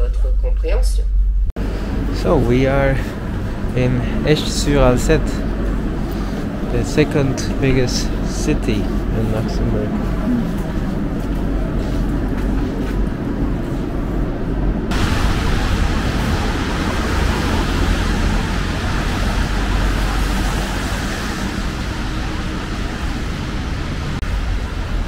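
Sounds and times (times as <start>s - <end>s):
city street traffic rumble: 0.0s - 25.0s
tyres hissing on wet road: 1.6s - 9.9s, 14.9s - 25.0s.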